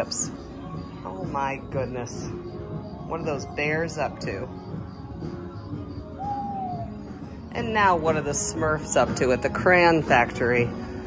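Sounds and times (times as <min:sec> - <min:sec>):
low background music: 0:00.0 - 0:11.0
owl hoot: 0:06.1 - 0:07.3.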